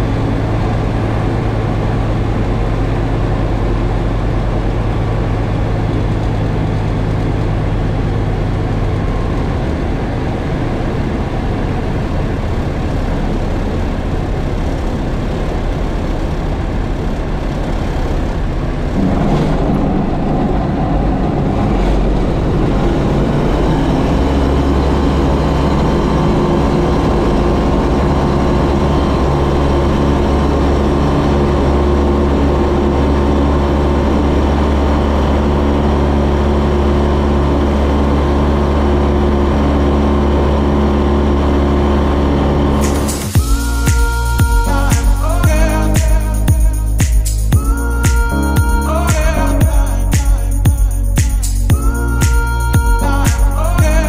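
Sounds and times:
light aircraft engine drone: 0.0s - 54.0s.

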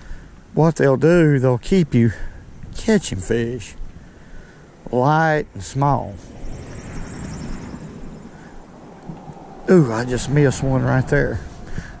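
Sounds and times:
wind buffeting microphone: 1.8s - 12.0s.

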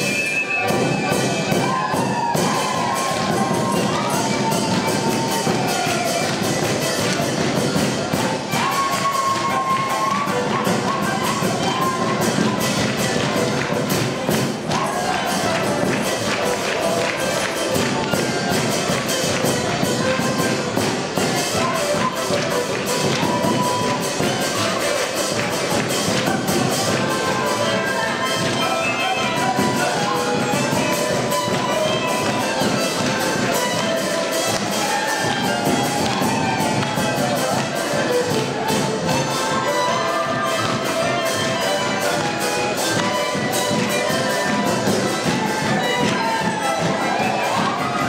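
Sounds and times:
large drum beat: 0.0s - 28.6s, 29.2s - 48.0s
accordion: 0.0s - 48.0s
clarinet: 0.0s - 48.0s
violin: 0.0s - 48.0s.

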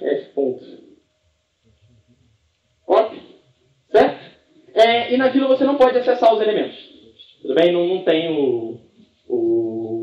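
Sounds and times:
person speaking: 0.0s - 1.0s, 2.8s - 10.0s.

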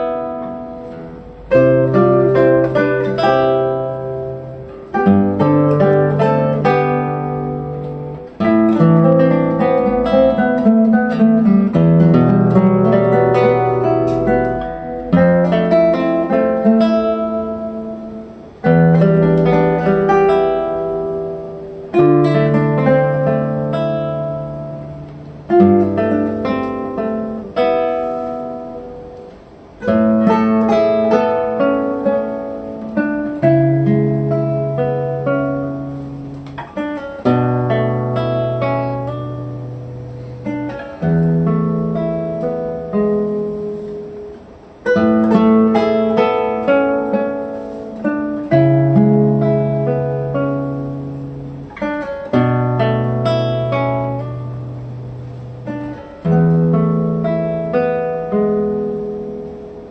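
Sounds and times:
classical guitar duet: 0.0s - 59.9s.

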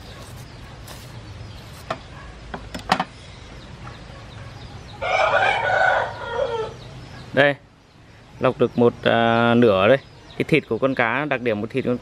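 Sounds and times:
rooster crowing: 5.0s - 6.8s.

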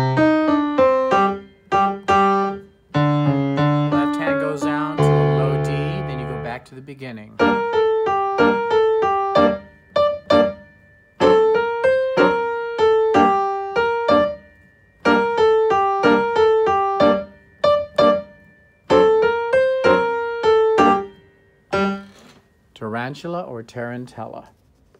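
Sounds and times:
upright piano playing lively dance: 0.0s - 6.7s, 7.3s - 22.1s.

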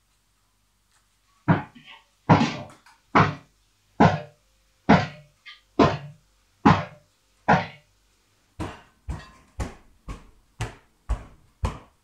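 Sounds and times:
heavy footstep thuds: 8.6s - 12.0s.

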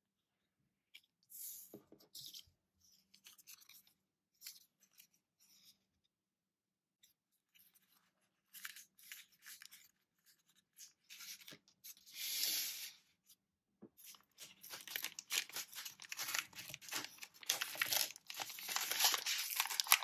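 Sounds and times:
paper packaging rustling: 14.1s - 20.0s.

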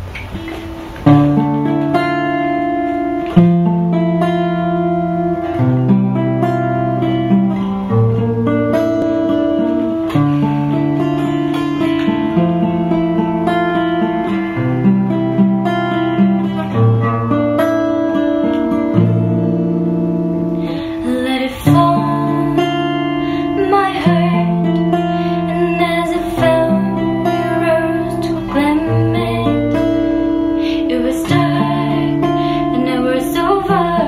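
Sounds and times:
acoustic guitar picked chords: 0.0s - 34.0s.

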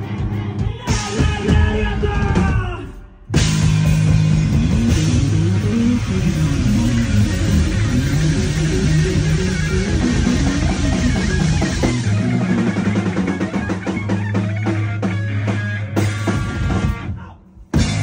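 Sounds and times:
rock band playing live: 0.0s - 18.0s.

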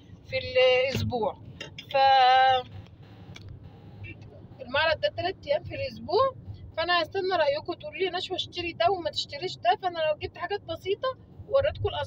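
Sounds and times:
car interior hum: 0.0s - 12.0s.

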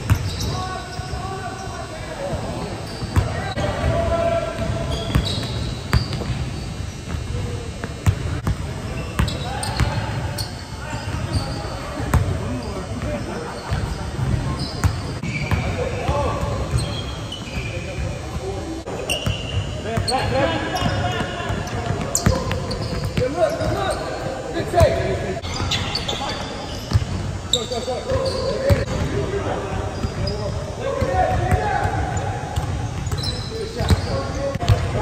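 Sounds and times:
sneakers squeaking: 0.0s - 35.0s.

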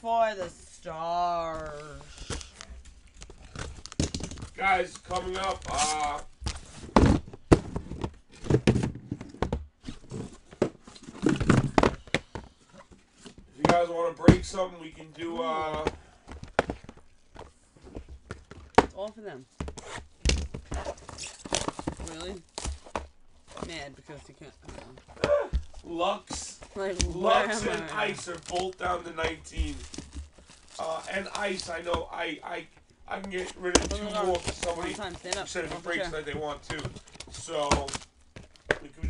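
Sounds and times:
cardboard rustle: 19.5s - 31.9s, 33.2s - 38.8s
cardboard case rustling: 33.2s - 38.7s.

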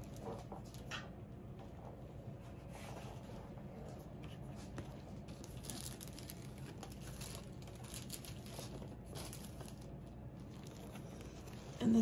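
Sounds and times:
packaging crinkling and rustling: 0.0s - 1.1s, 4.6s - 11.8s
low steady room hum: 0.0s - 12.0s.

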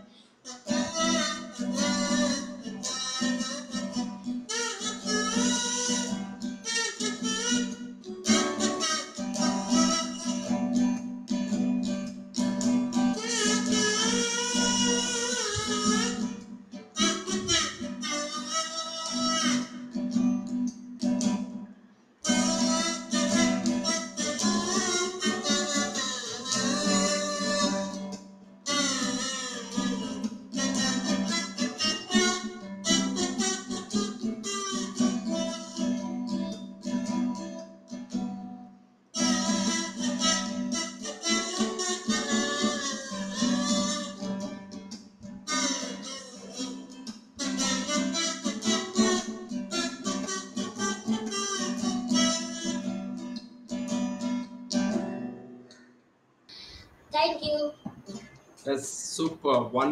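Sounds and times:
buzzy kazoo melody: 0.0s - 21.3s, 22.2s - 38.2s, 39.2s - 54.9s
acoustic guitar strumming: 0.0s - 56.0s, 57.2s - 58.5s.

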